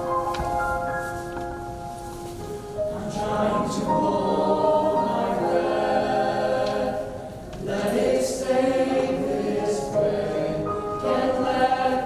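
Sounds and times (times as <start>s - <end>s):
choir singing in harmony: 2.8s - 12.0s.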